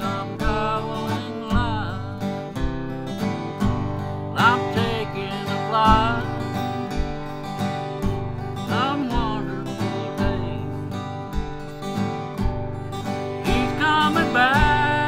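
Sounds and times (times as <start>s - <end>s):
man singing: 0.0s - 2.4s, 4.3s - 7.0s, 8.5s - 11.2s, 13.4s - 15.0s
acoustic guitar strummed: 0.0s - 15.0s.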